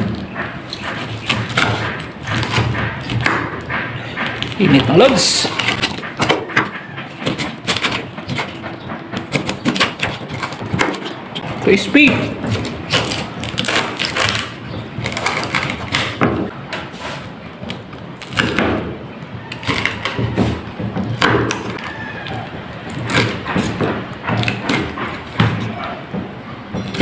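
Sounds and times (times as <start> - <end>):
knife chopping on wooden board: 0.0 - 27.0.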